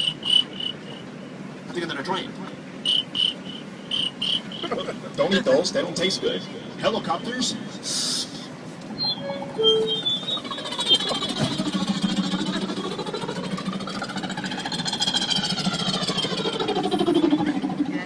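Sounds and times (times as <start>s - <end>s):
beatboxer imitating helicopter rotor: 10.4s - 18.0s.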